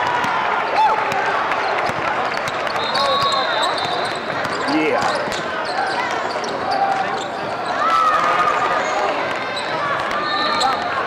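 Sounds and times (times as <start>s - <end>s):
sneaker squeaks: 1.8s - 8.0s, 9.3s - 11.0s.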